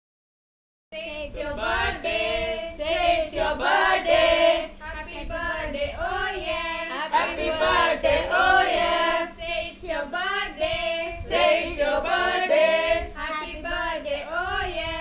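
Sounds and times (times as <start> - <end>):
high voices singing: 1.0 - 15.0
steady low hum: 1.0 - 15.0.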